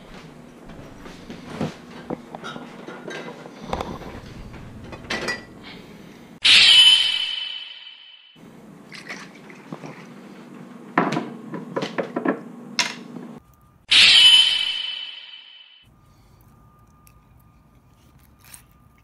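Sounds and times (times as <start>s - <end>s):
bright ringing sound: 6.4s - 8.4s, 13.9s - 17.5s.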